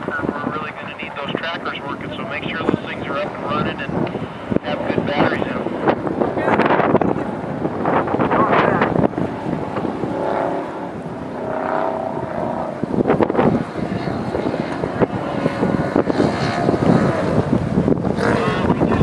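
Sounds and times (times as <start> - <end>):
truck engine revving hard: 6.6 - 19.0.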